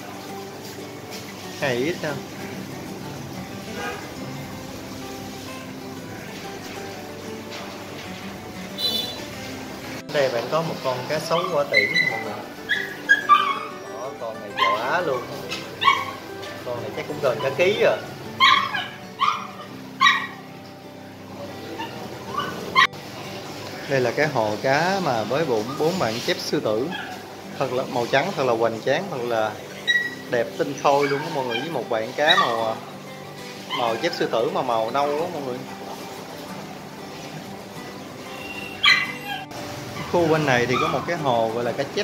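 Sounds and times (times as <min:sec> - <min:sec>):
soft background music: 0:00.0 - 0:42.0
high-pitched animal yelp: 0:11.3 - 0:14.0, 0:14.6 - 0:16.6, 0:17.3 - 0:20.4, 0:21.6 - 0:22.9, 0:29.8 - 0:30.3, 0:30.9 - 0:32.7, 0:33.6 - 0:34.4, 0:38.3 - 0:40.1.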